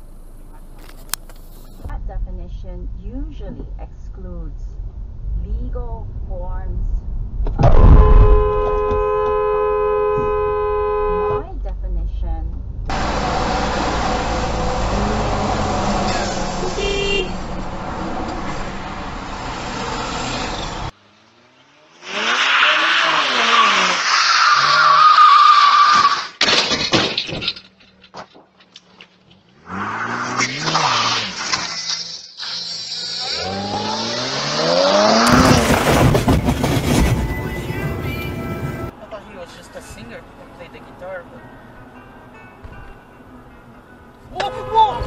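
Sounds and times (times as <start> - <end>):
road noise: 0.0 - 45.0
car horn sounding: 7.8 - 11.6, 14.9 - 18.2, 44.3 - 45.0
car crash impact: 25.8 - 28.7, 34.7 - 38.7.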